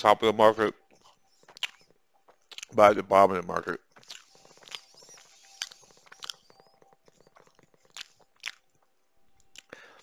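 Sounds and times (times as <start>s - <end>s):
lip smacks and mouth clicks: 1.5s - 1.8s, 2.5s - 2.8s, 4.0s - 6.5s, 7.1s - 8.7s, 9.4s - 9.8s.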